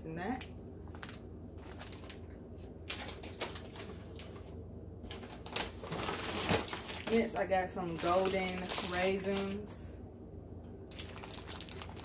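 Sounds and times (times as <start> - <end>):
steady low hum: 0.0 - 12.0
plastic packaging crinkling: 0.8 - 9.7, 10.9 - 12.0.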